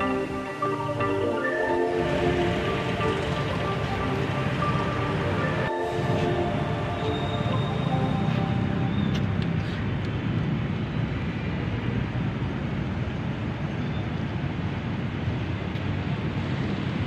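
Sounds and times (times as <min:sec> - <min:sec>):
traffic rumble and hiss: 0:00.0 - 0:17.0.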